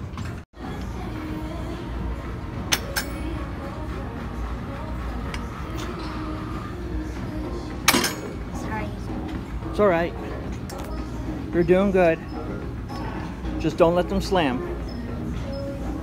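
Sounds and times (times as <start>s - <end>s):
faint background music: 0.2s - 16.0s
steady low hum: 0.6s - 16.0s
weight stack clinking: 7.8s - 8.4s.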